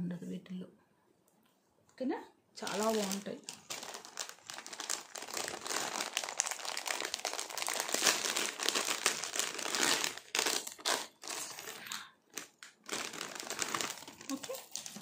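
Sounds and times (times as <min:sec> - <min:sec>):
plastic packaging crinkling: 0:02.6 - 0:15.0.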